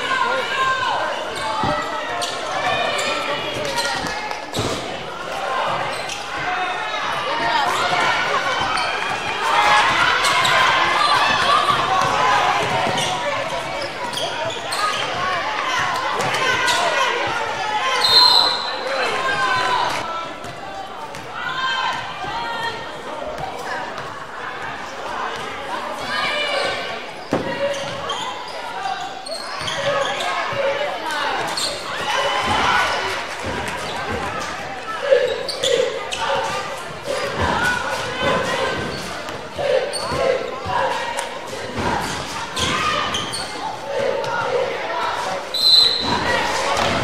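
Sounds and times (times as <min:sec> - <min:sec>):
shouting and chatter: 0:00.0 - 0:47.0.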